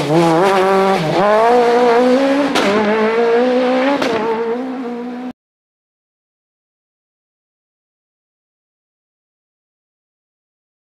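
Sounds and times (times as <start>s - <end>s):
rally car engine revving: 0.0s - 5.4s
gear change crack: 2.4s - 3.0s.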